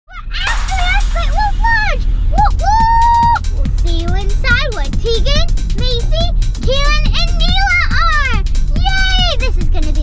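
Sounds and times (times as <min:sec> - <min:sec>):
car cabin rumble: 0:00.7 - 0:10.0.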